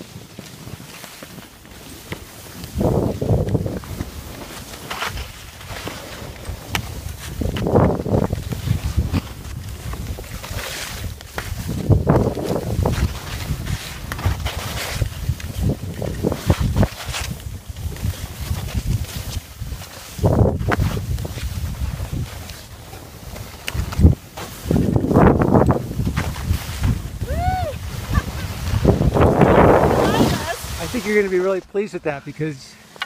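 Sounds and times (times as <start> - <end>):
skis scraping over snow: 0.0 - 33.0
wind buffeting microphone: 2.5 - 4.4, 6.2 - 31.3
person laughing: 27.3 - 28.7.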